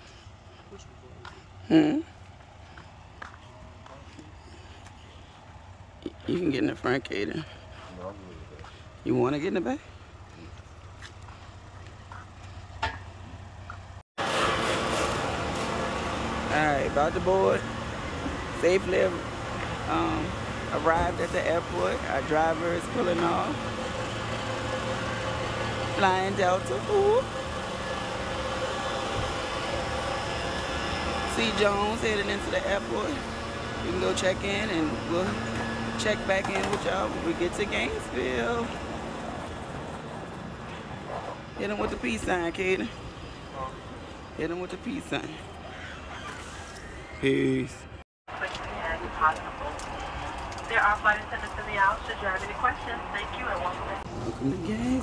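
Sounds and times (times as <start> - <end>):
traffic rumble: 0.0 - 55.0.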